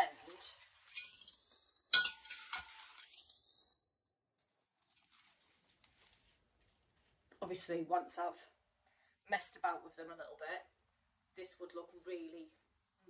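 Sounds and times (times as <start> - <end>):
leaves rustling: 0.0 - 7.1
stems clinking against glass vase: 0.8 - 3.2.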